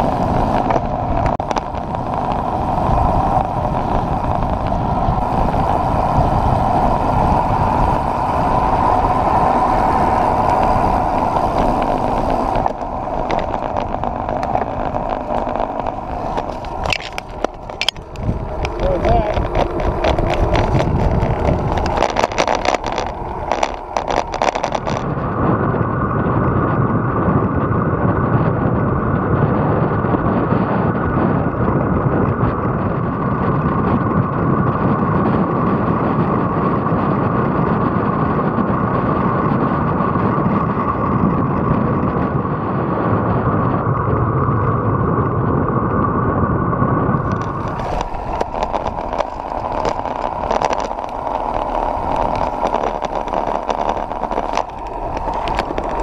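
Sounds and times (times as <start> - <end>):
wind and road noise: 0.0 - 56.0.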